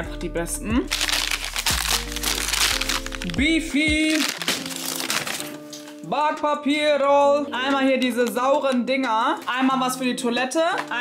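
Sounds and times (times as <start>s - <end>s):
background music with low notes: 0.0s - 11.0s
plastic wrapper crinkling: 0.9s - 6.1s, 7.6s - 11.0s.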